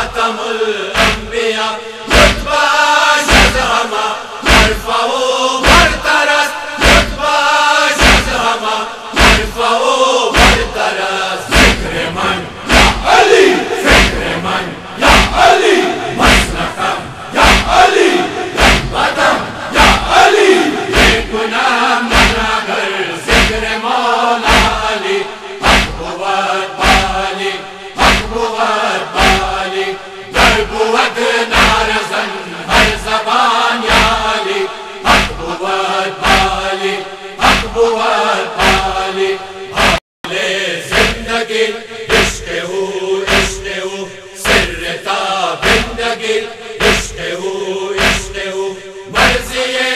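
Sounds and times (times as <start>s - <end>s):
men chanting in unison: 0.0s - 49.9s.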